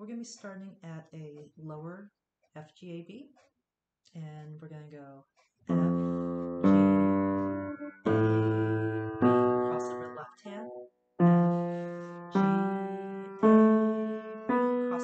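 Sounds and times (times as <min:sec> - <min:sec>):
piano single notes: 0:05.7 - 0:15.0.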